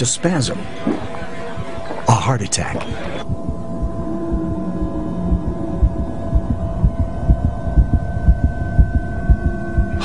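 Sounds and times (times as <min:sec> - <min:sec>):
steady droning hum: 0:00.0 - 0:10.0
fast heartbeat thumping: 0:03.2 - 0:10.0.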